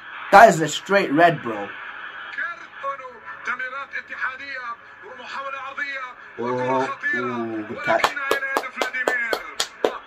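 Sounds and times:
tv commentary: 0:00.0 - 0:10.0.

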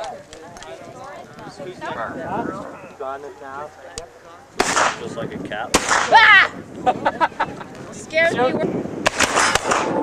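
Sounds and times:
people talking: 0:00.0 - 0:08.8.

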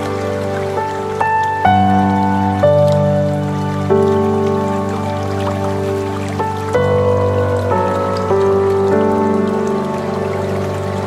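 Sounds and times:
slow lo-fi music: 0:00.0 - 0:11.0
soft rain-like patter: 0:00.0 - 0:11.0.

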